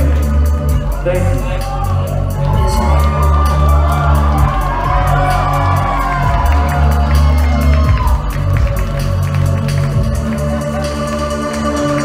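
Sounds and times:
electronic music with pulsing bass: 0.0 - 12.0
crowd cheering and whooping: 0.6 - 12.0.

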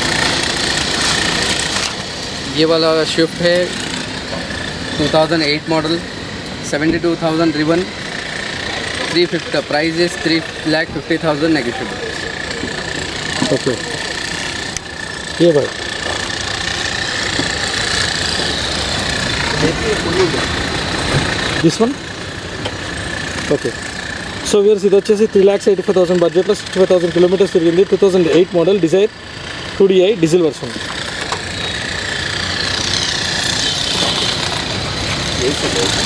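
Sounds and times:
vehicle engine idling: 0.0 - 36.0
faint voices: 8.5 - 14.7.

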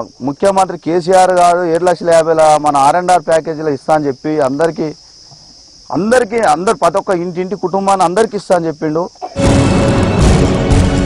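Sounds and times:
man talking: 0.0 - 5.0, 5.9 - 9.2
high-pitched insect drone: 0.0 - 11.0.

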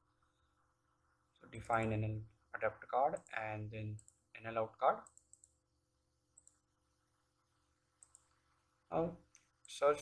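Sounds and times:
faint steady hum: 0.0 - 10.0
computer mouse clicks: 3.1 - 4.2, 5.0 - 5.6, 6.3 - 6.6, 8.0 - 8.4.

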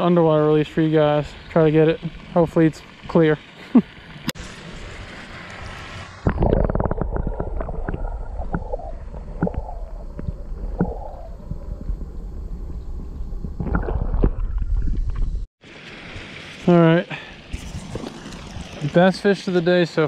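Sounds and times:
underwater rumble of water: 0.2 - 16.6.

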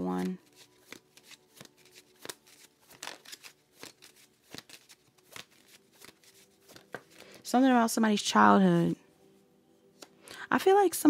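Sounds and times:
cards being shuffled: 0.0 - 7.4.

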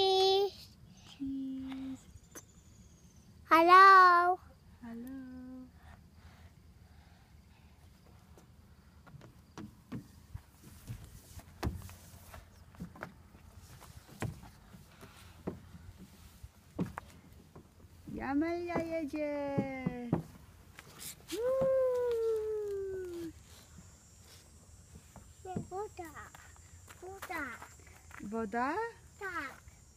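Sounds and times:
knocks and taps on climbing frame: 16.8 - 20.4.

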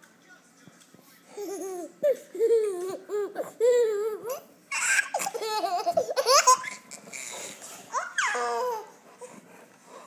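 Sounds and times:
baby laughing and squealing: 1.4 - 9.0.

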